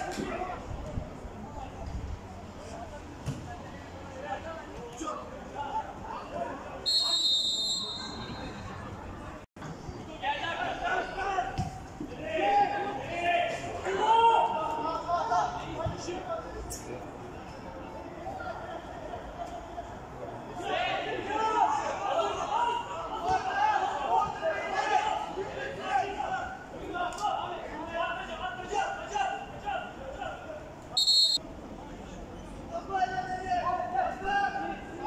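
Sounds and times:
voices calling and chattering: 0.0 - 35.0
referee's whistle blast: 6.9 - 8.6, 31.0 - 31.4.

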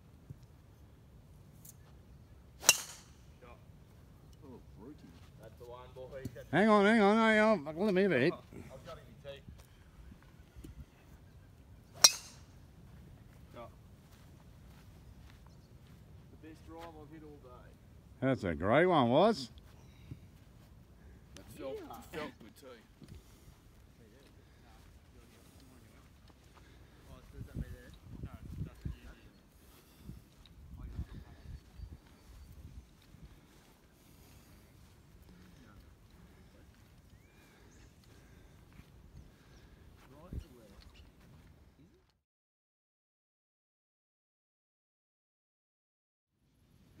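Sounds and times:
golf driver striking ball: 2.6 - 3.2, 12.0 - 12.4
faint high chirp: 37.1 - 38.0.

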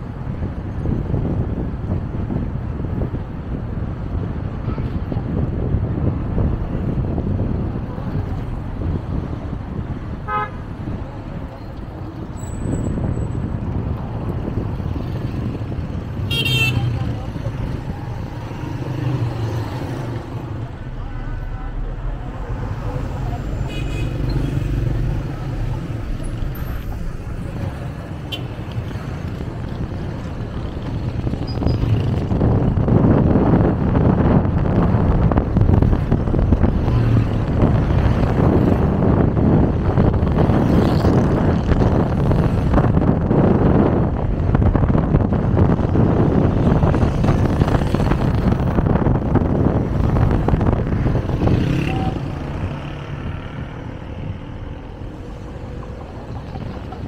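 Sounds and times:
road and engine rumble: 0.0 - 57.0.

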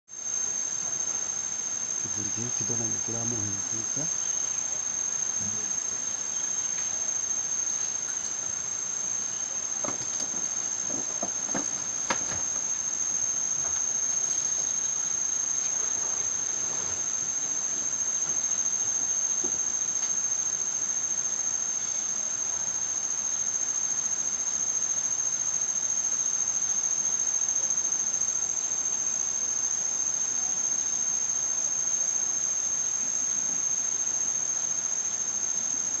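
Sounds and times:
high-pitched insect drone: 0.1 - 36.0.

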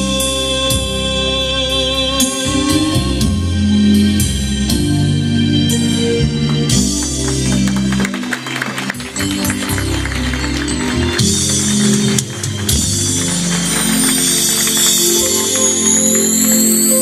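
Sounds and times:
band playing slow ballad: 0.0 - 17.0
keyboard: 0.0 - 17.0
light percussion: 8.9 - 17.0.

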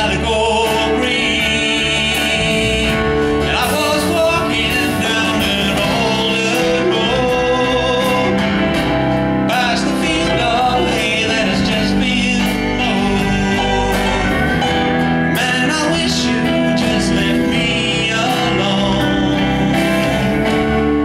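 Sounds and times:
live country band: 0.0 - 21.0
man singing with vibrato: 0.0 - 21.0.

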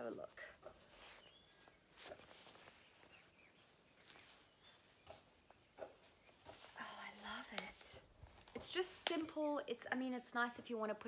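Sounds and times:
fabric rustling: 0.0 - 8.8.

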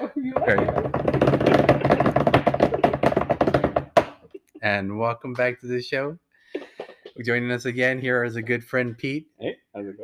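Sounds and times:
drum roll: 0.4 - 3.9.

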